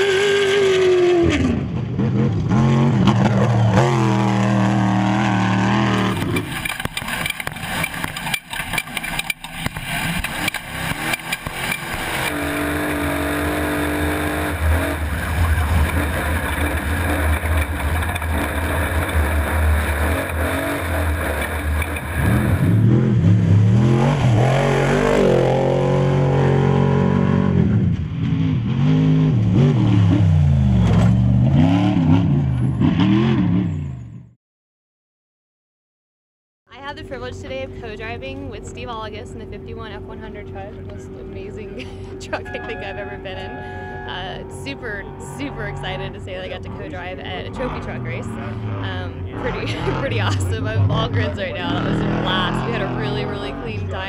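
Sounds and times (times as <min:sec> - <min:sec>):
off-road vehicle engines revving: 0:00.0 - 0:34.3, 0:36.8 - 0:54.0
gravel noise: 0:03.2 - 0:24.9.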